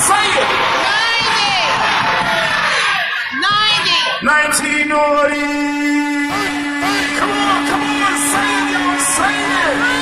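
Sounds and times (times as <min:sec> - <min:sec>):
crowd shouting and cheering: 0:00.0 - 0:10.0.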